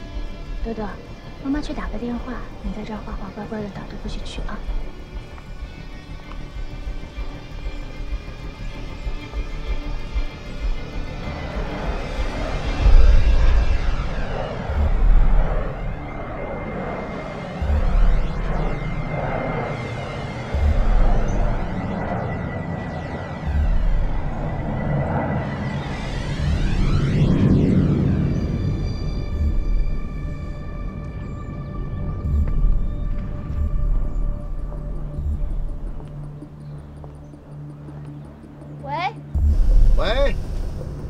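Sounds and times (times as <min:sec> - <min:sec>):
eerie film score: 0:00.0 - 0:41.0.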